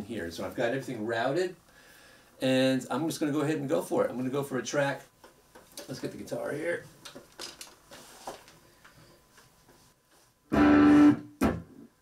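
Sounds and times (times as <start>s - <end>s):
electric guitar chord: 10.5s - 11.3s.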